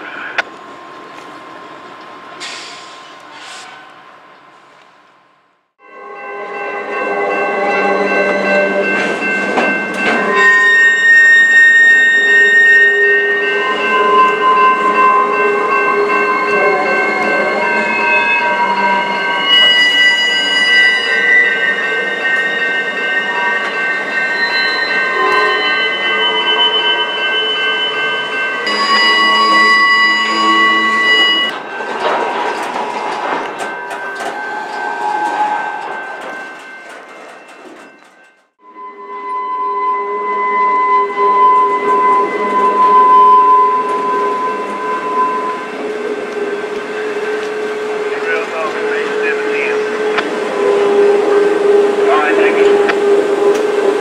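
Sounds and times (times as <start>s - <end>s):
rumble of rail cars: 0.0s - 54.0s
train wheels squealing: 10.0s - 54.0s
clicking of train wheels: 31.5s - 38.6s, 52.6s - 53.9s.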